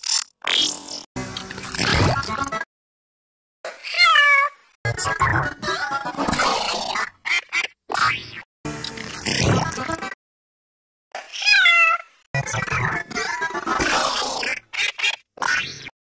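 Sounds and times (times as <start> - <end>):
high cartoon cat voice: 3.7 - 7.0, 11.2 - 15.1.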